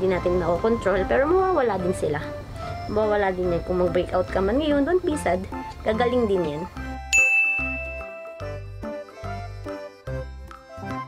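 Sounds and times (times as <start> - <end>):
background music with bass line: 0.0 - 11.0
bright chime ringing: 7.1 - 8.7.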